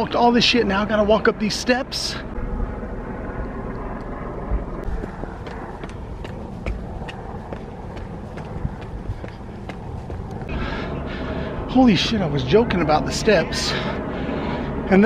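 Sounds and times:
low outdoor rumble: 0.0 - 15.0
footsteps on concrete stairs: 4.8 - 10.8.

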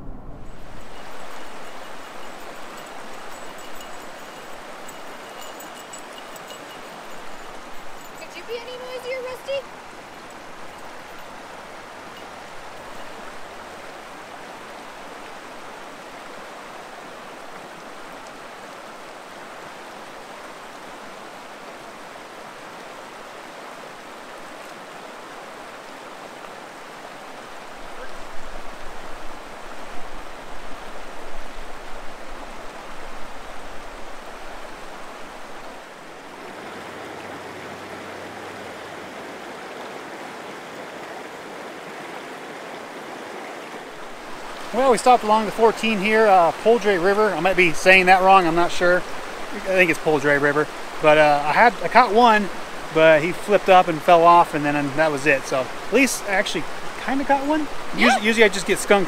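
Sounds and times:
river rushing over rocks: 0.0 - 59.0.

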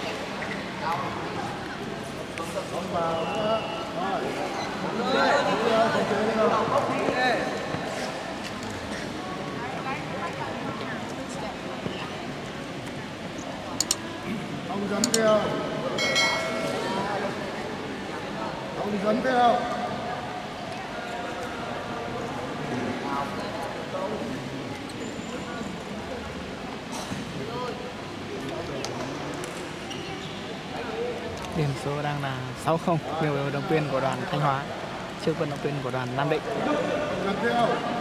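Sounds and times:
sports hall background noise: 0.0 - 38.0.

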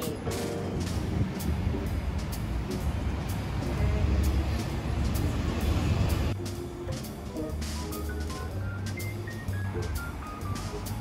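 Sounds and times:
bus engine close by: 0.0 - 11.0
city traffic rumble: 0.0 - 11.0.

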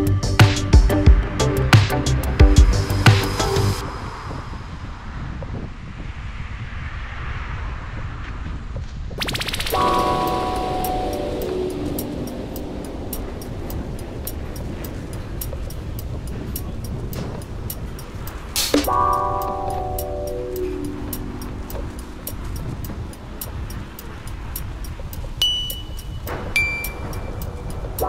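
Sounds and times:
wind and rolling rumble: 0.0 - 28.0
faint ticking: 9.2 - 28.0.

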